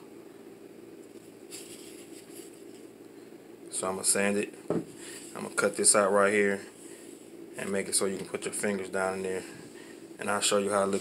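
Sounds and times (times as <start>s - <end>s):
low steady hum: 0.0s - 11.0s
faint rustle of wood handled: 1.0s - 3.0s, 10.5s - 11.0s.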